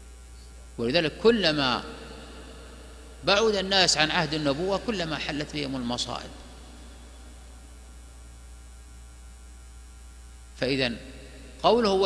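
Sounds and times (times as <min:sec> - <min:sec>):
faint hiss: 0:00.0 - 0:08.9
electrical mains hum: 0:00.0 - 0:12.0.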